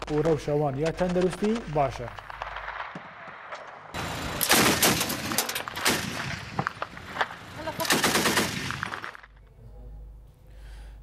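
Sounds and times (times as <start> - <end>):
machine gun firing bursts: 4.4 - 6.6, 7.6 - 9.2.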